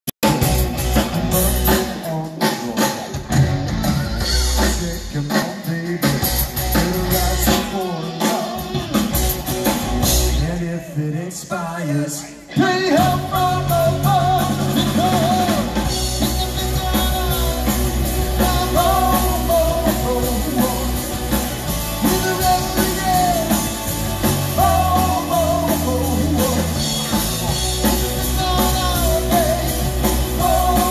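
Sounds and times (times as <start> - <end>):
bass guitar: 0.2 - 11.0, 12.4 - 30.9
drum kit: 0.2 - 11.0, 12.5 - 30.9
electric guitars: 0.2 - 30.9
lead singer singing: 1.0 - 9.2, 10.0 - 30.9.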